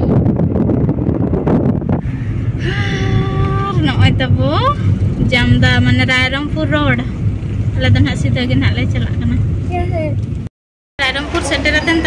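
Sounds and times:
vehicle rumble from inside: 0:00.0 - 0:12.0.

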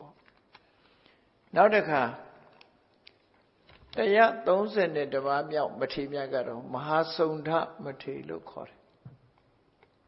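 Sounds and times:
man delivering sermon: 0:01.5 - 0:02.6, 0:03.9 - 0:08.9.

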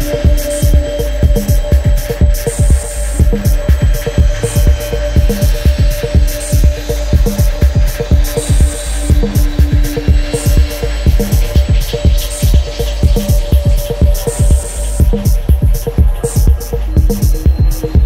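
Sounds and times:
deep bass: 0:00.0 - 0:18.0.

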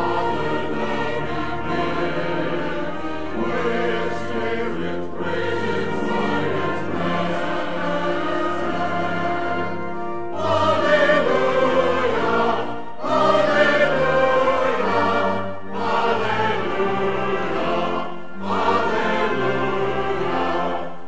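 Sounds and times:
brass ensemble: 0:00.0 - 0:21.0
church choir singing: 0:00.0 - 0:21.0.

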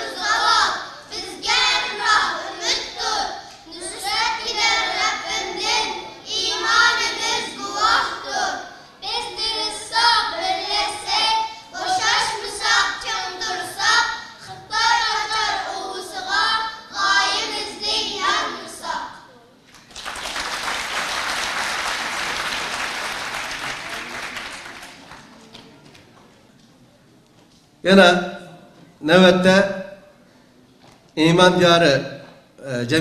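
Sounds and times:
audience applauding: 0:19.8 - 0:25.8.

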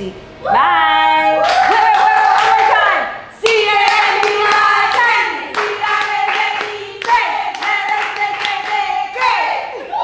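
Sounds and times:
hands clapping: 0:03.4 - 0:09.4.

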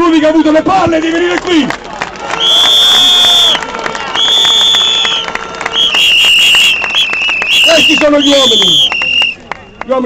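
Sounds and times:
crowd clapping and cheering: 0:00.2 - 0:10.0
shrill whistle blasts: 0:02.4 - 0:10.0.

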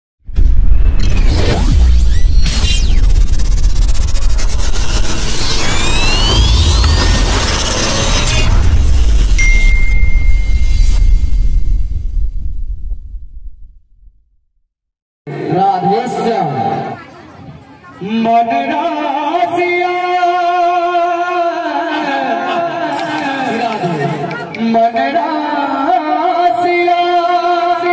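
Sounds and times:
whooshes: 0:00.3 - 0:14.0
heavy deep bass: 0:00.3 - 0:14.4
rising electronic glides: 0:00.7 - 0:12.9.

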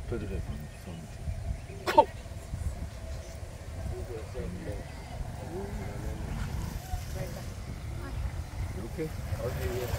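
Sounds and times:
faint voices: 0:00.0 - 0:09.9
wind buffeting microphone: 0:00.0 - 0:09.9.

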